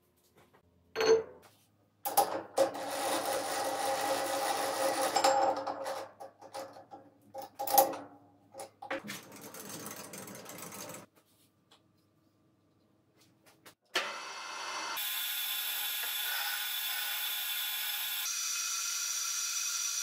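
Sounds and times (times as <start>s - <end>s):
chuck key metallic whirring rasp: 2.1s - 7.9s.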